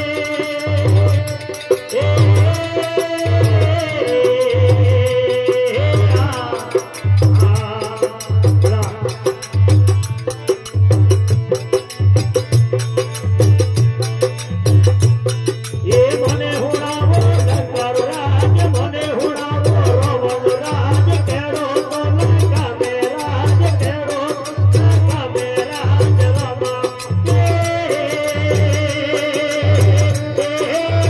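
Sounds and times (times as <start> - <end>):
hand drum rhythm with bass strokes: 0.0 - 31.0
harmonium: 0.0 - 31.0.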